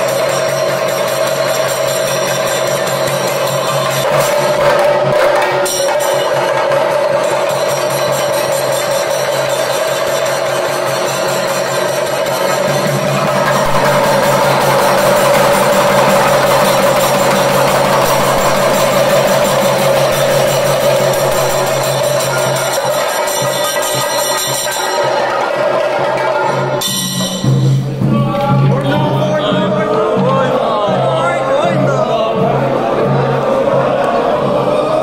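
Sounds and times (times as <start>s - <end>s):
drums in fast rolls: 0.0s - 35.0s
steady held tone: 12.0s - 24.8s.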